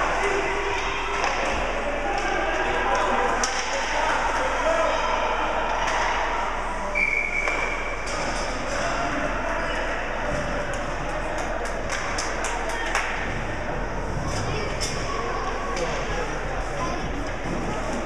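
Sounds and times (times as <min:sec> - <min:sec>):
spectators talking: 0:00.0 - 0:18.0
high whistle tone: 0:06.9 - 0:07.9.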